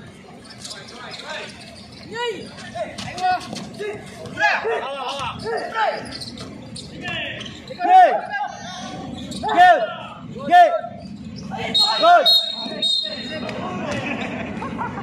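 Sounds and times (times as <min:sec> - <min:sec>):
sneakers squeaking on court: 0:00.0 - 0:04.4, 0:05.0 - 0:07.8, 0:08.5 - 0:09.6, 0:10.9 - 0:14.0
players' voices: 0:00.0 - 0:15.0.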